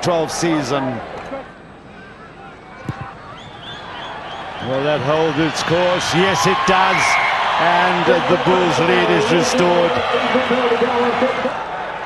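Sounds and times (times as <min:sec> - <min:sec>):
stadium crowd noise: 0:00.0 - 0:12.0
man talking: 0:04.6 - 0:11.6.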